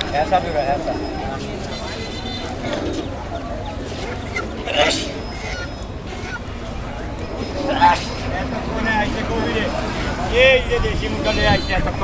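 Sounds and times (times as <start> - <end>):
caged birds calling: 0.0 - 12.0
crowd voices: 0.0 - 12.0.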